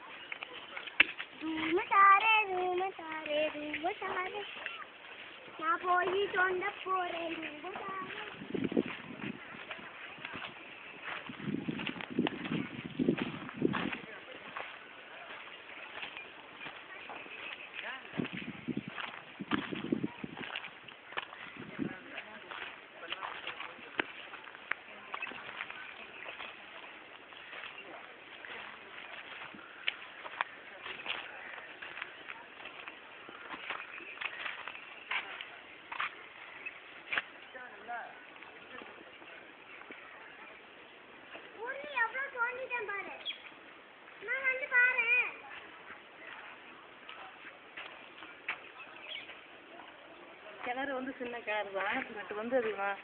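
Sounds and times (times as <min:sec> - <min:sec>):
faint voices: 0:00.0 - 0:53.0.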